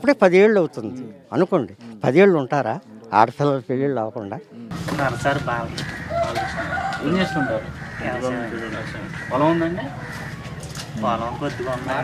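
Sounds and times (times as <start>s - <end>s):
rooster crowing: 5.4s - 8.4s.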